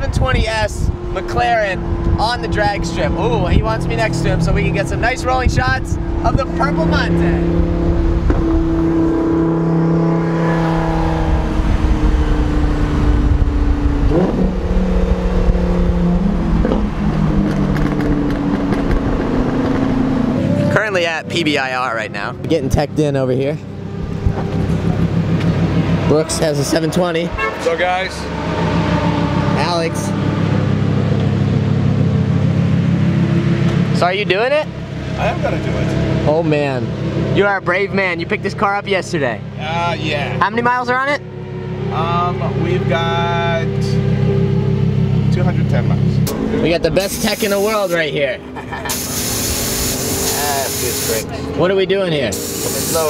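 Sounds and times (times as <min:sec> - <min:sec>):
sports car engines cruising: 0:00.0 - 0:53.0
wind and road rush: 0:00.0 - 0:53.0.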